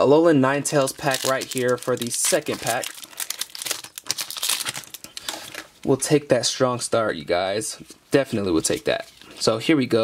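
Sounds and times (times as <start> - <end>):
foil wrapper crinkling: 0.8 - 5.7.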